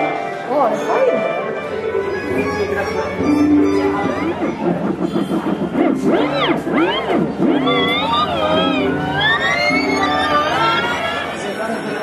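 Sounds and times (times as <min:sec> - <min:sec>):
warbling record playback: 0:01.4 - 0:12.0.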